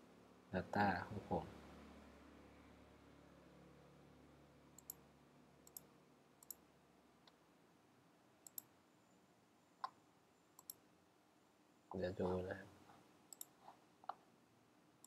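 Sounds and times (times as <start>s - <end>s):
keyboard and mouse clicks: 4.8s - 5.0s, 5.6s - 6.6s, 8.4s - 8.7s, 10.6s - 10.8s, 13.3s - 14.2s.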